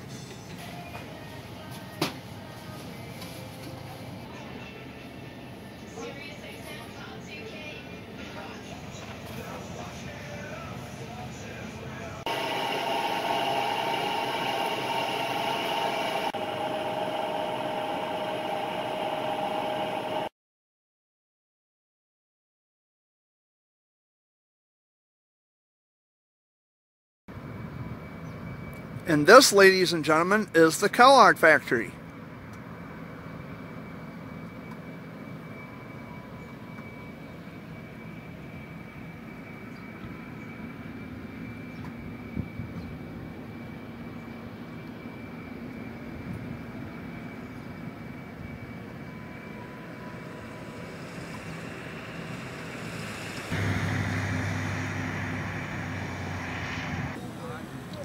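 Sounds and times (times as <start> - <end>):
engines and machinery rumbling: 8.2 - 20.3, 27.3 - 58.0.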